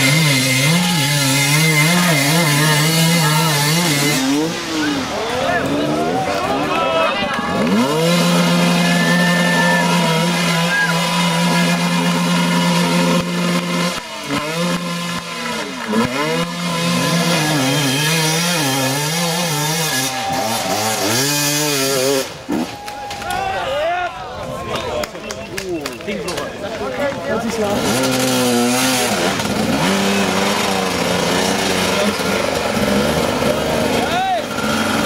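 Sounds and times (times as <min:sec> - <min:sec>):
motorcycle engine revving: 0:00.0 - 0:06.6, 0:07.3 - 0:22.7, 0:27.5 - 0:35.0
spectators shouting: 0:00.0 - 0:13.2, 0:18.6 - 0:25.3, 0:29.7 - 0:32.4.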